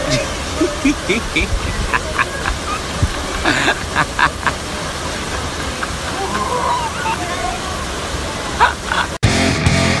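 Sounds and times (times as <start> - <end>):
faint voices: 0.0 - 9.2
waterfall rushing: 0.0 - 9.2.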